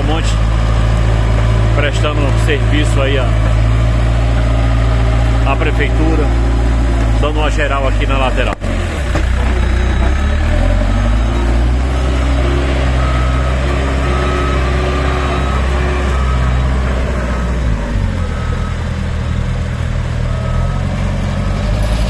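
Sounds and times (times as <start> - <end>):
diesel engine running: 0.0 - 22.0
reversing alarm beeps: 10.6 - 18.8, 20.2 - 20.9.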